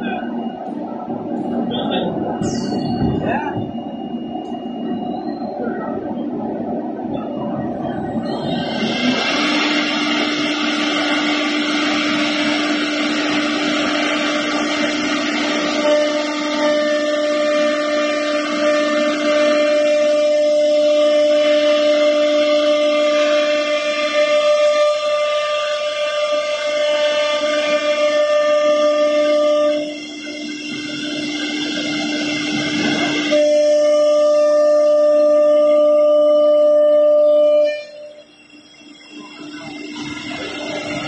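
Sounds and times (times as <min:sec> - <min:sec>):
higher whine: 0:00.0 - 0:21.6, 0:26.2 - 0:41.0.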